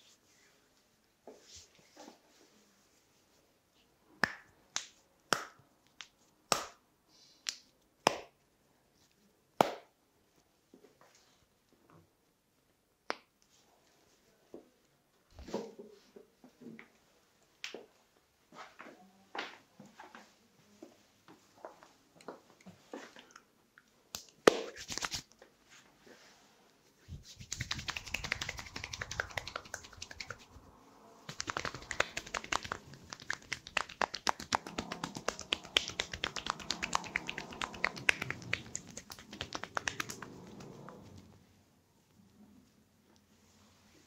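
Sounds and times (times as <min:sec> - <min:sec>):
hands rubbing and slapping skin: 0:24.1 - 0:25.4, 0:27.0 - 0:41.1.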